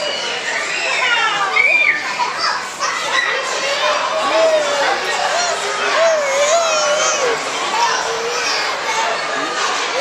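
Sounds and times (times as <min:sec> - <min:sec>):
children calling out and chattering: 0:00.0 - 0:10.0.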